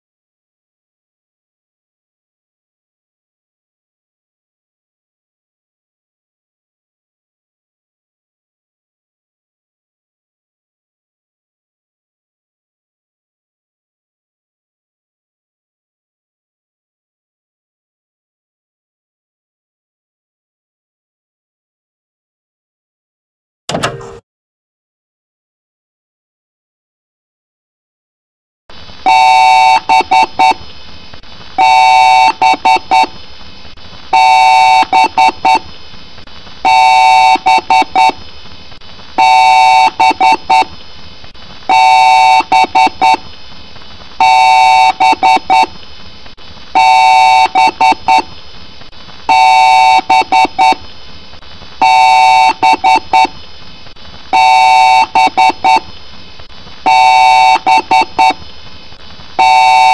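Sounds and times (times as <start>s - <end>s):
short alarm beeps: 54.4s - 55.8s.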